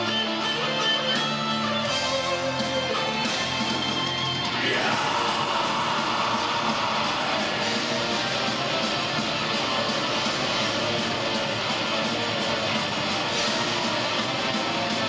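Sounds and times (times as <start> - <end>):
distorted electric guitars strumming: 0.0 - 15.0
drums: 0.0 - 15.0.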